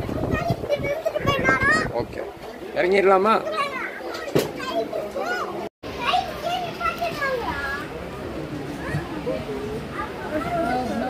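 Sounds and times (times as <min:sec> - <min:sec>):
people talking: 0:02.9 - 0:11.0.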